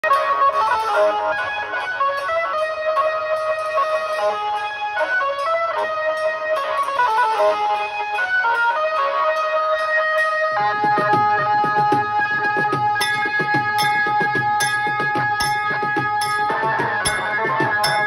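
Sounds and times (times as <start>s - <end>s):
banjo melody over loudspeakers: 0.0s - 18.0s
cymbal ticking: 0.9s - 18.0s.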